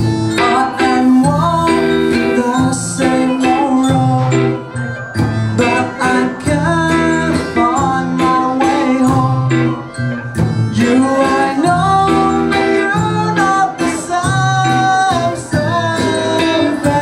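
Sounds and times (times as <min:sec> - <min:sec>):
person singing: 0:00.0 - 0:10.0, 0:10.6 - 0:17.0
electric guitar: 0:00.0 - 0:17.0
live rock band: 0:00.0 - 0:17.0.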